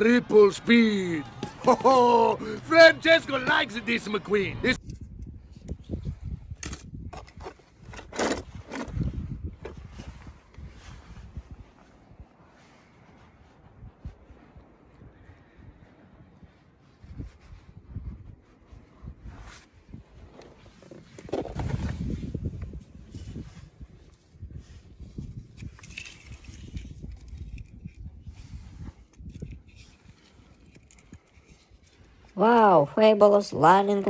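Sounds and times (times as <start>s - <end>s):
person speaking: 0.0s - 4.8s
handling bumps: 1.2s - 4.1s
hand rustling through dry grass: 9.8s - 14.8s.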